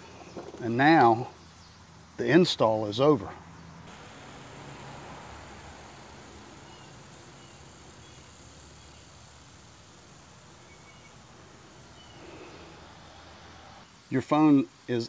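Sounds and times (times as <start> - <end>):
insects: 0.0 - 15.0.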